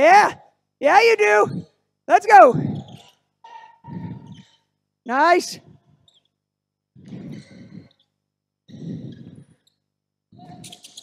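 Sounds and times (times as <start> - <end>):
faint sneaker squeak on court: 10.4 - 11.0.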